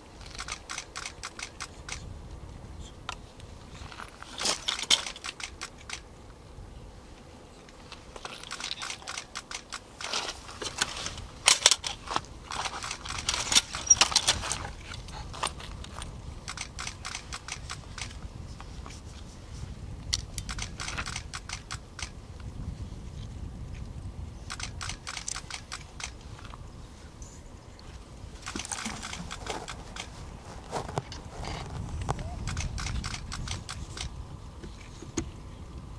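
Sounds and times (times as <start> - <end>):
camera shutters clicking rapidly: 0.2 - 2.1, 4.4 - 6.0, 8.2 - 14.7, 16.4 - 18.2, 20.4 - 22.2, 24.5 - 26.2, 28.4 - 30.1, 32.3 - 34.1.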